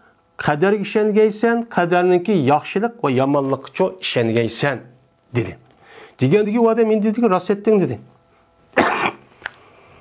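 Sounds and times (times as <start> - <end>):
man coughing: 8.7 - 9.3.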